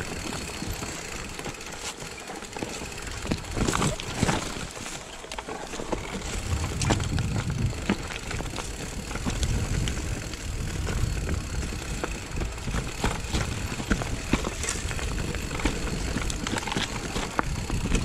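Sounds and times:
bike rattling over bumps: 0.0s - 18.0s
bike tyres rumbling on dirt: 0.0s - 18.0s.

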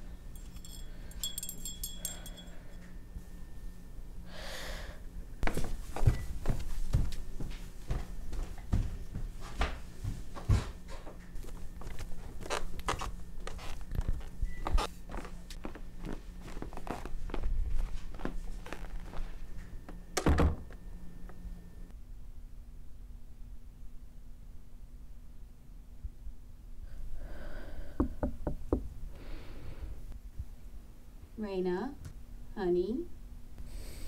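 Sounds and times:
footsteps on wooden stairs: 5.4s - 11.2s
knocks on a door: 28.0s - 28.8s.

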